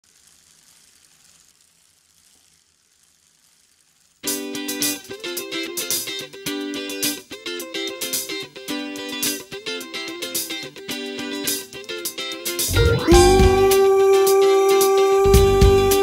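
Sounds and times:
faint hiss: 0.0 - 16.0
strummed guitar chords: 12.7 - 16.0.

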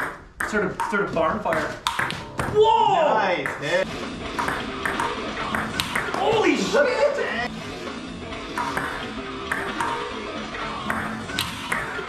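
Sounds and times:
music playing: 0.9 - 12.0
table tennis ball clicking: 4.4 - 6.2.

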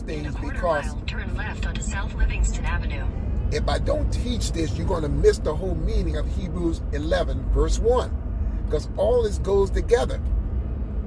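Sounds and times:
man speaking: 0.0 - 1.0, 3.5 - 8.1, 8.7 - 10.2
car cabin road and engine rumble: 0.0 - 11.0.

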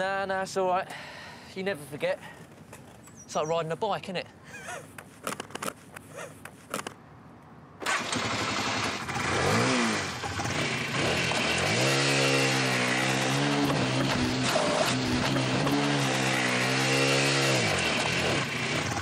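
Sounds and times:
small motorcycle engine revving: 7.8 - 19.0.

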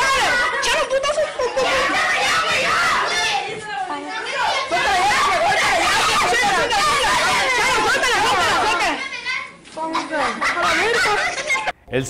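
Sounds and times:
children shouting and talking: 0.0 - 11.8.

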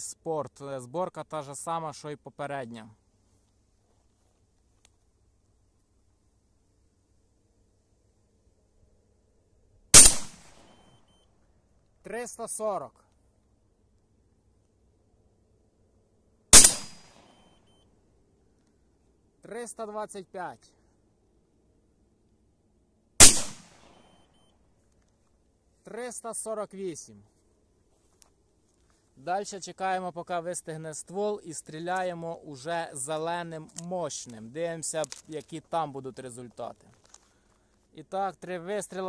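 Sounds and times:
shotgun shot with echo: 10.0 - 10.8, 16.5 - 17.3, 23.2 - 24.0.

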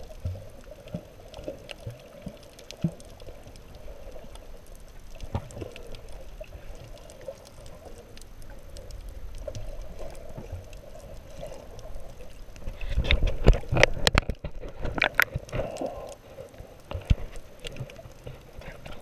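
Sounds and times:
bubbling: 0.0 - 19.0
faint clicks: 0.0 - 19.0.

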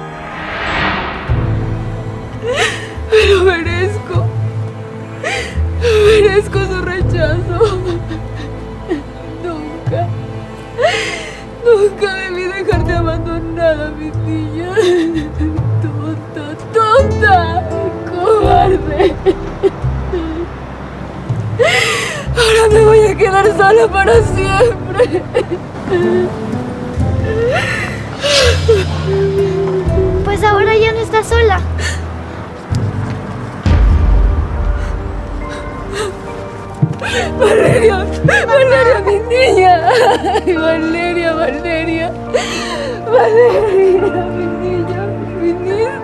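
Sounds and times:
background music with held tones: 0.0 - 46.0
woman sobbing: 2.4 - 4.2, 5.1 - 10.2, 10.8 - 20.6, 21.6 - 26.4, 27.2 - 30.3, 34.7 - 46.0
woman crying: 2.4 - 4.3, 5.1 - 10.2, 10.8 - 20.5, 21.6 - 26.4, 27.2 - 30.3, 34.8 - 46.0
sobbing gasp: 10.8 - 11.5, 21.6 - 22.6, 27.2 - 29.7, 34.8 - 36.3, 37.0 - 40.4, 42.3 - 44.1.

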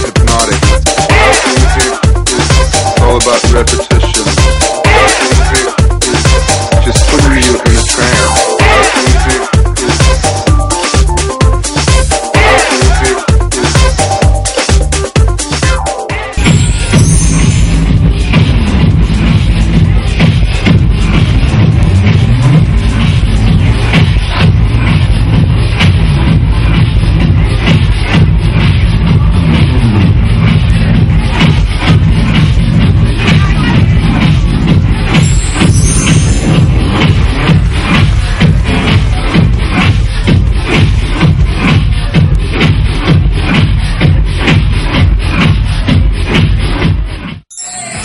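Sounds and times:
electronic dance music: 0.0 - 48.0.

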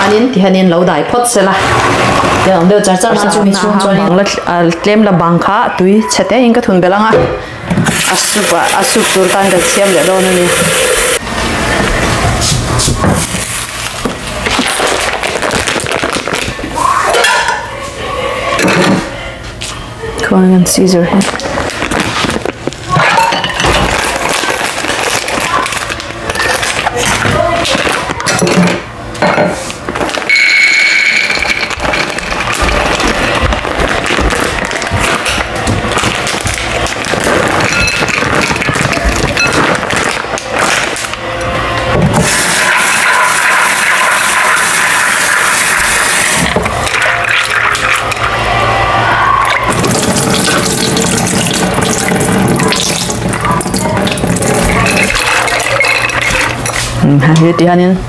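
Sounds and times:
plastic bag crinkling: 13.2 - 16.8, 21.2 - 28.3, 29.7 - 41.2, 49.6 - 57.0.

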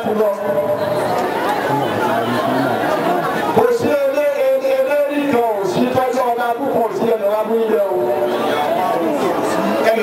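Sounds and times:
man preaching into a microphone: 0.0 - 1.0, 3.5 - 10.0
crowd chatter: 0.0 - 10.0.

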